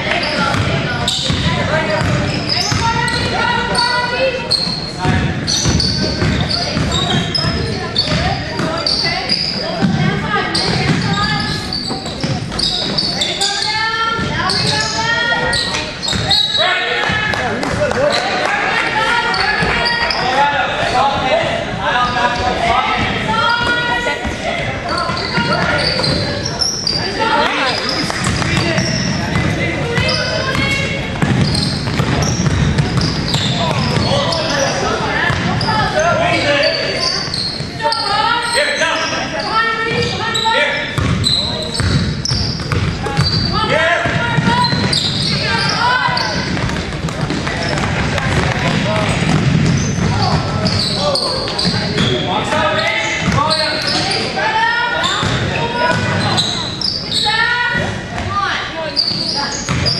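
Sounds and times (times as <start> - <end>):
voices calling out in a gym: 0.0 - 59.9
basketball bouncing on hardwood: 0.5 - 3.0, 5.0 - 7.2, 28.1 - 34.1, 41.0 - 41.2, 46.4 - 50.8.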